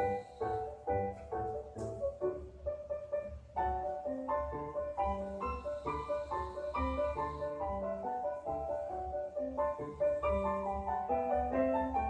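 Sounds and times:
piano chords and melody: 0:00.0 - 0:12.0.

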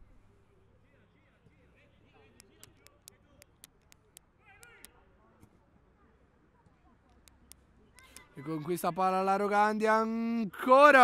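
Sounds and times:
sharp quiet clicks: 0:02.4 - 0:04.9, 0:07.1 - 0:08.3.

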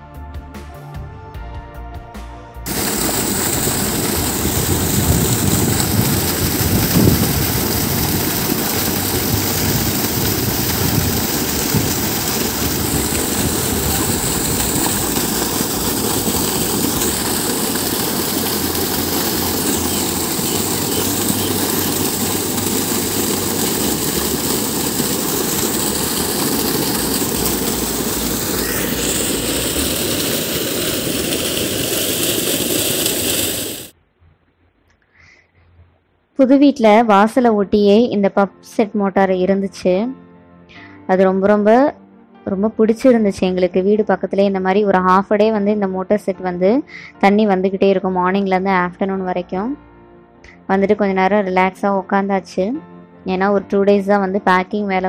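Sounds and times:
water gushing from pipe: 0:02.7 - 0:34.0.

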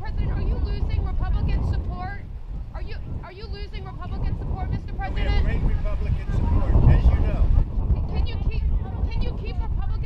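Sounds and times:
people talking indistinctly: 0:00.0 - 0:10.0
steady low rumble: 0:00.0 - 0:10.0.

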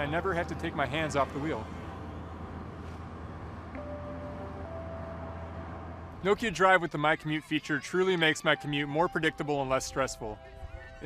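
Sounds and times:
road traffic rumble: 0:00.0 - 0:11.0
soft held tones: 0:03.7 - 0:05.6.

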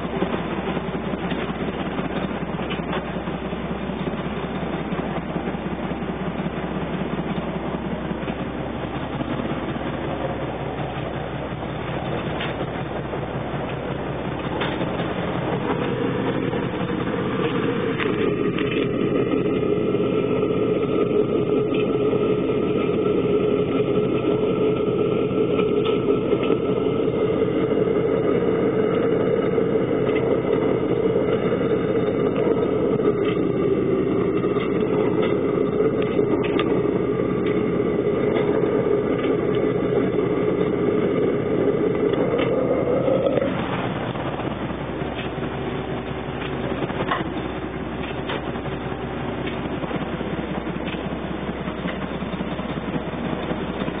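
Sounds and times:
boat diesel engine running: 0:00.0 - 0:54.0.

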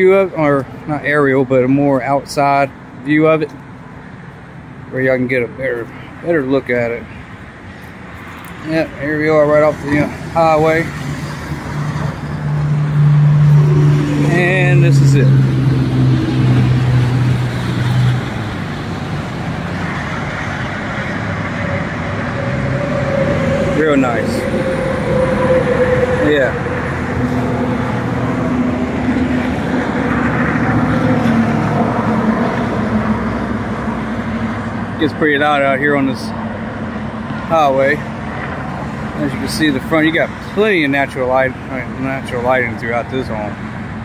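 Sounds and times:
highway traffic: 0:00.0 - 0:44.0
road noise hiss: 0:00.0 - 0:44.0
passing vehicle engine drone: 0:08.3 - 0:44.0.

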